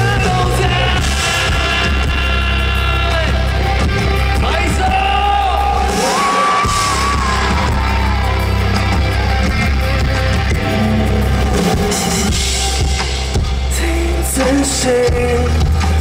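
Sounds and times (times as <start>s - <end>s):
high guitar lead line: 0.0s - 16.0s
live rock band: 0.0s - 16.0s.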